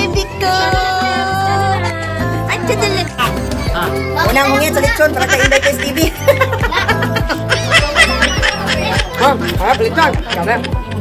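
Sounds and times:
background music with beat: 0.0 - 11.0
woman laughing: 4.9 - 11.0.

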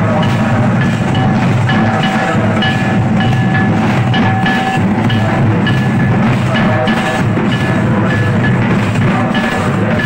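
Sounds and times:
drums beating: 0.0 - 10.0.

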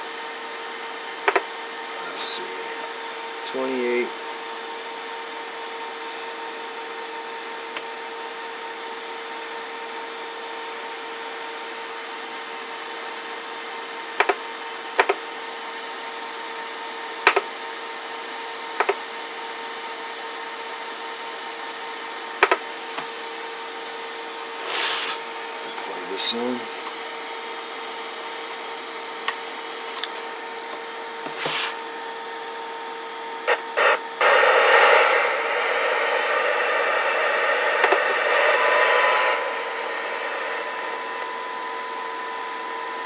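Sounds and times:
steady radio tone: 1.7 - 4.1, 33.3 - 43.0
radio hiss: 1.8 - 4.1, 33.4 - 42.8
sharp clicks of buttons and knobs: 33.4 - 39.4.

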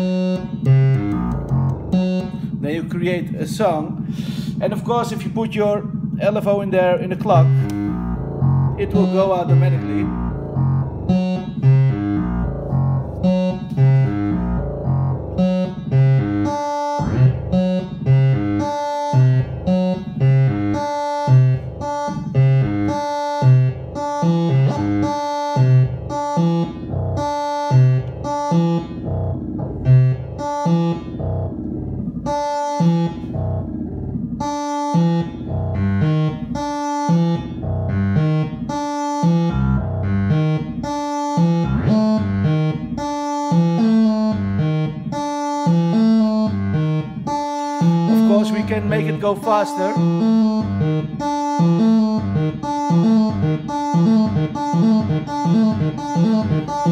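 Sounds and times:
synthesizer sequencer loop: 0.0 - 56.9.

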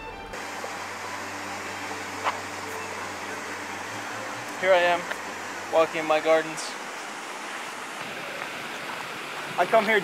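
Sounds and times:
background music: 0.0 - 6.8
outdoor background hiss: 0.3 - 10.0.

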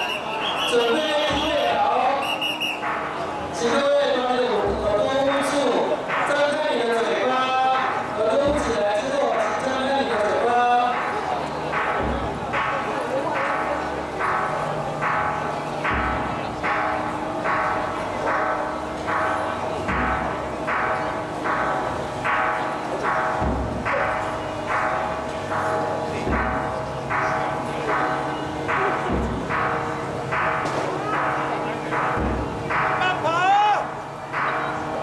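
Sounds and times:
crowd noise: 0.0 - 35.0
metal percussion ringing strokes: 0.0 - 35.0.

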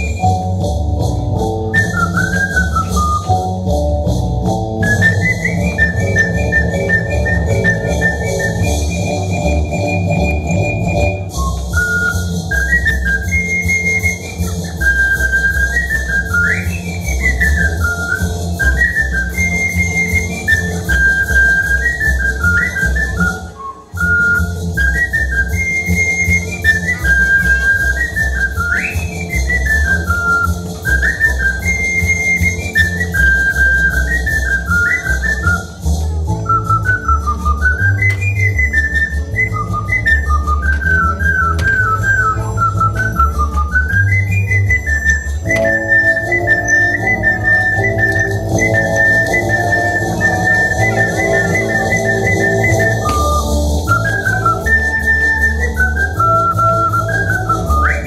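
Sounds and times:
bass line accompaniment: 0.0 - 58.0
ocarina melody: 0.0 - 58.0.

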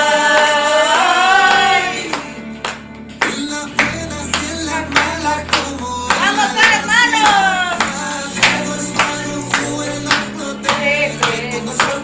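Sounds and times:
recorded song with singing: 0.0 - 12.0
hands clapping in a beat: 0.1 - 12.0.

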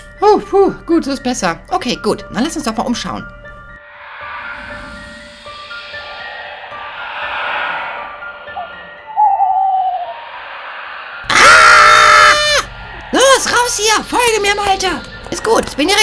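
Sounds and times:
dark eerie music: 3.3 - 16.0
owl hoot: 8.6 - 10.2
high-pitched cry: 11.3 - 12.7.

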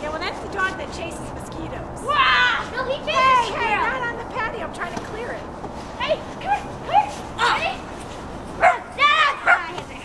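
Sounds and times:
dog yipping: 8.6 - 9.7.

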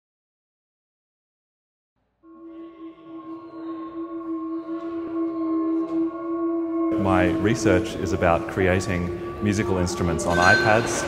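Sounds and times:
electronic singing bowl tones: 2.3 - 11.0.

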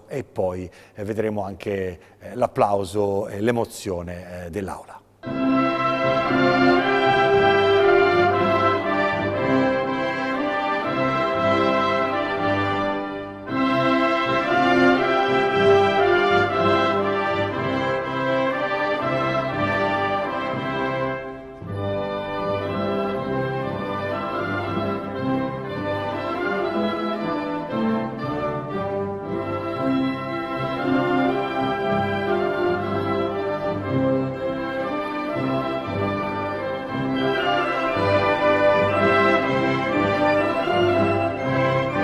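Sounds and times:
orchestral brass chords: 5.2 - 42.0.

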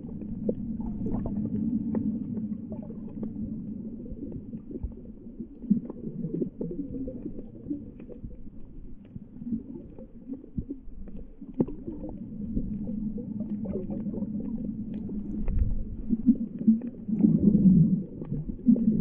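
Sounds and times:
underwater rumble of moving water: 0.0 - 19.0.

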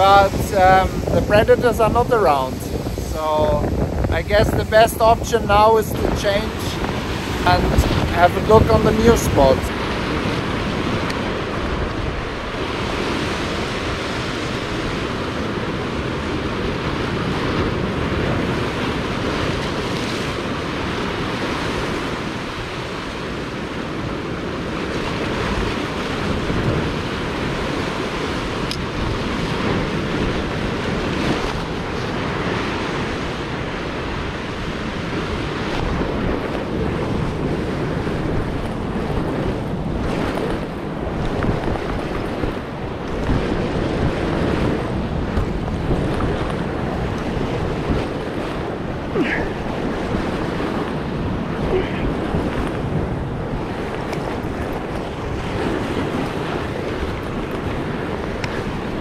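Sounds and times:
surf breaking on rocks: 0.0 - 59.0.

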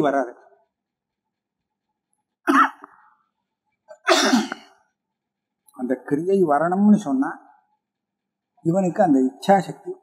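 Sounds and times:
man coughing: 3.9 - 4.8.

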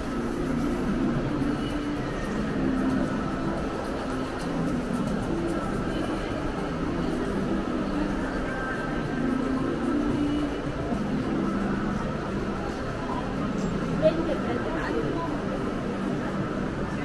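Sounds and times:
busy public space background noise: 0.0 - 17.0
faint music: 0.0 - 17.0.

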